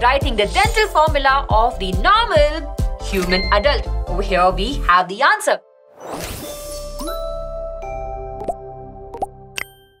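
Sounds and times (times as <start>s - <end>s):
chime-like jingle: 3.1s - 4.0s.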